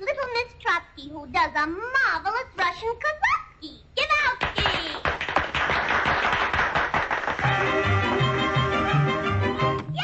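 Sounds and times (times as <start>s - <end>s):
applause: 4.4s - 8.4s.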